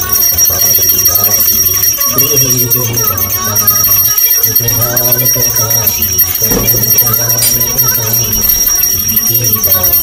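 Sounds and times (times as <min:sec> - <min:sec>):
bells ringing: 0:00.0 - 0:10.0.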